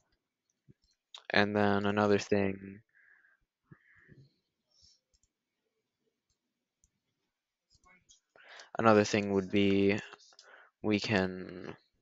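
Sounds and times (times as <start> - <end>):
computer mouse clicks: 5.0 - 5.4.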